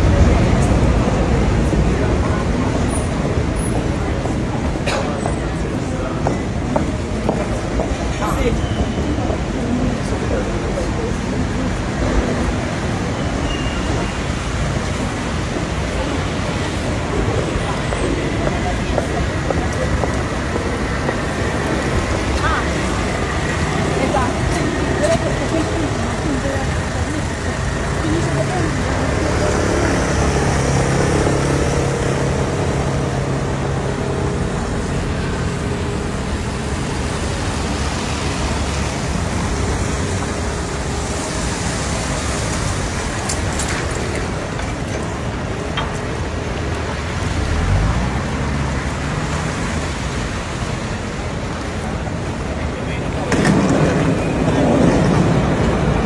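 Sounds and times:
indistinct voices: 0.0s - 56.0s
tyres hissing on wet road: 0.0s - 56.0s.

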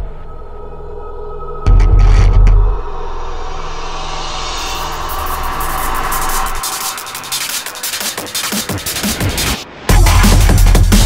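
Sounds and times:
low drone: 0.0s - 10.0s
jet-like noise sweep: 2.9s - 9.9s.

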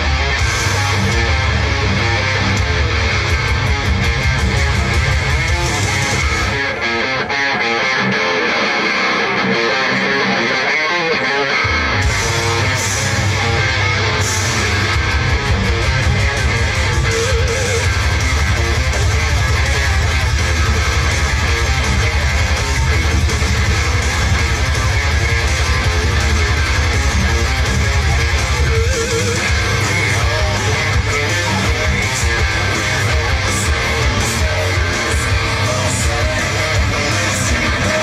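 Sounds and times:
bass guitar line: 0.0s - 38.0s
electric guitar playing rock: 0.0s - 38.0s.

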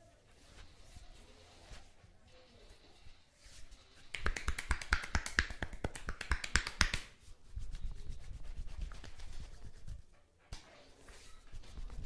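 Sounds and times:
hands rubbing skin: 4.0s - 12.0s
hands slapping skin: 4.1s - 7.2s.

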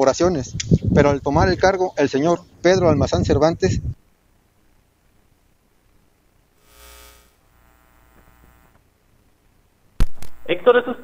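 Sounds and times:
faint ticks: 6.8s - 8.9s.

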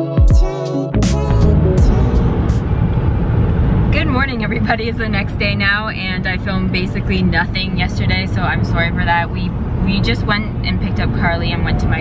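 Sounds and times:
music: 0.0s - 2.7s
car road and engine rumble: 1.0s - 12.0s.

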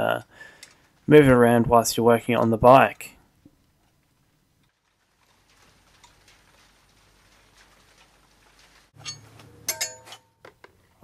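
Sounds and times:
metal hardware clicking and ringing: 9.0s - 10.4s.

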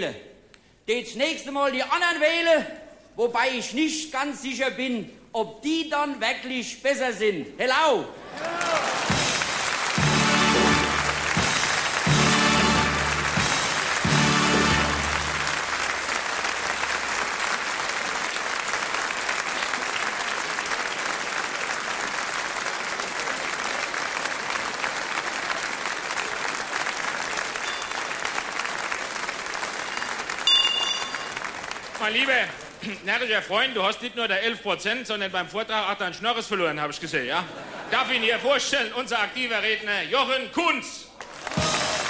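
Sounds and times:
audience applauding: 8.2s - 33.1s, 41.2s - 42.0s
band fanfare chords: 9.0s - 16.0s, 41.5s - 42.0s.

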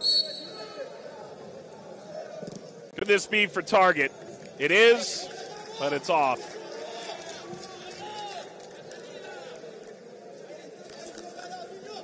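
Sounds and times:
stadium ambience: 0.0s - 7.7s
footballers shouting: 3.0s - 6.6s.

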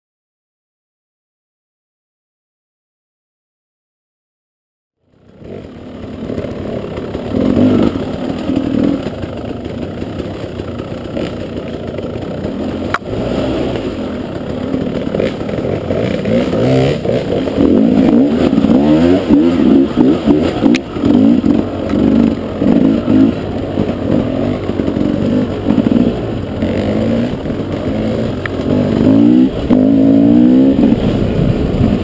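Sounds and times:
motorcycle engine revving: 5.0s - 32.0s.

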